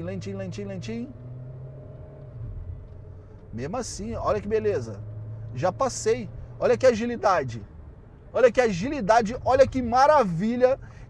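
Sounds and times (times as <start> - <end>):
car engine hum from inside: 0.0 - 11.0.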